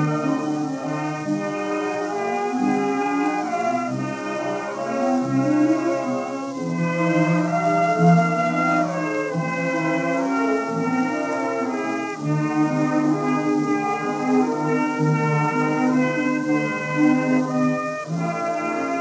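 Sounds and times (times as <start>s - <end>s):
faint record surface hiss: 0.0s - 19.0s
light orchestra with brass: 0.0s - 19.0s.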